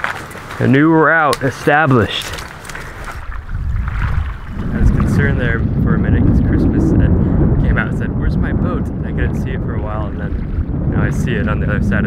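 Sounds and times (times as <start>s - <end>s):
wind buffeting microphone: 0.0s - 12.0s
person speaking: 0.6s - 2.5s.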